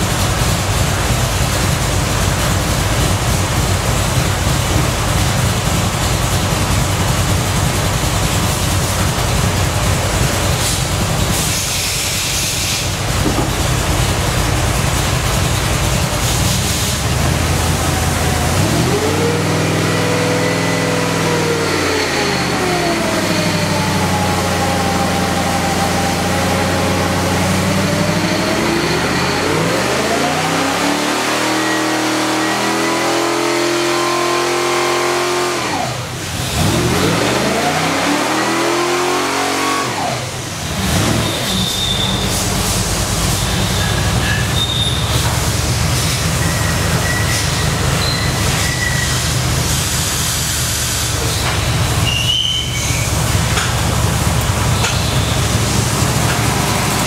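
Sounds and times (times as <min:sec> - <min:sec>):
engine revving and idling: 0:00.0 - 0:57.0.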